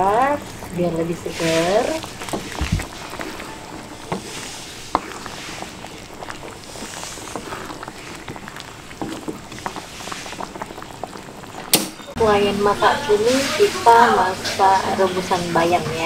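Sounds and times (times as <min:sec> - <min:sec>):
thick liquid sloshing in a pan: 0:00.0 - 0:12.1.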